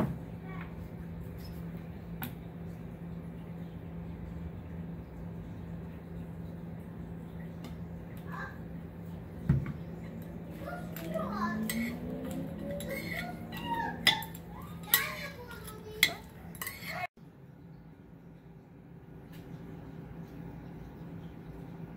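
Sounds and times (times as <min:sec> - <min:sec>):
steady low hum: 0:00.0 - 0:21.9
metal spoon tossing salad in bowl: 0:10.9 - 0:17.1
spoon clinking against bowl: 0:14.0 - 0:17.0.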